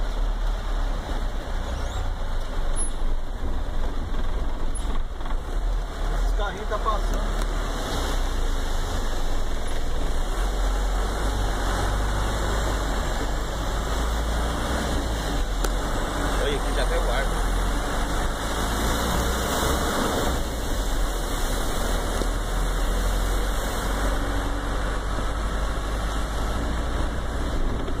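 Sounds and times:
hiss of water and rain: 0.0s - 28.0s.

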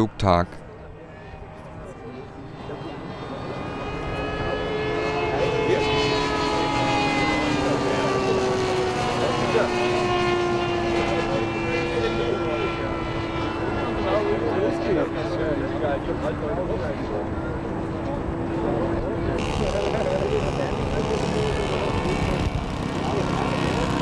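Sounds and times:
model airplane engine droning: 0.6s - 24.0s.

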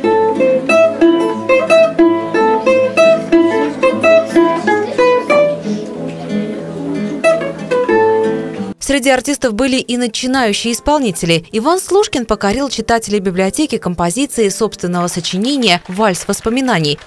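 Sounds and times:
balalaika and guitar duet: 0.0s - 8.8s.

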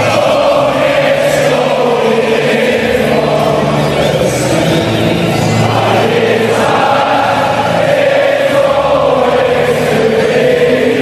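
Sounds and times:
crowd chanting: 0.0s - 11.0s.

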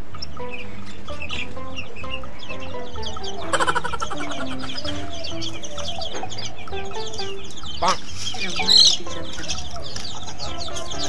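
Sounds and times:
background music: 0.0s - 11.0s
chicken clucking: 0.0s - 11.0s.

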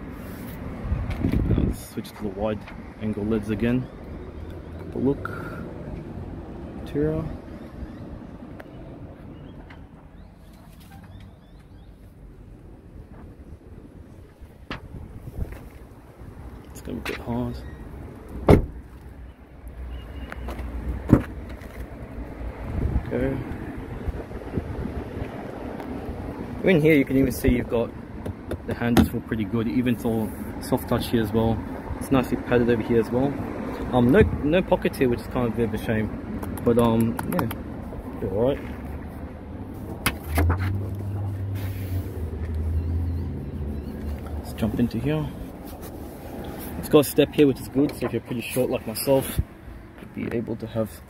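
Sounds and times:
low engine hum: 0.0s - 50.4s
car door latch clicking: 18.4s - 18.8s.

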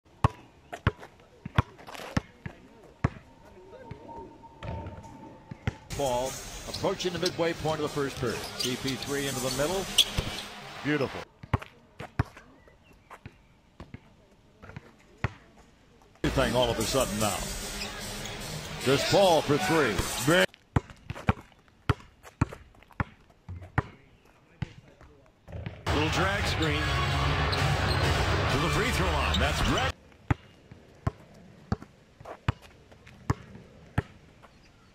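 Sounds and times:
basketball bouncing on asphalt: 0.2s - 3.2s, 4.6s - 5.8s, 11.4s - 12.4s, 13.0s - 15.5s, 20.5s - 25.9s, 30.1s - 34.6s.

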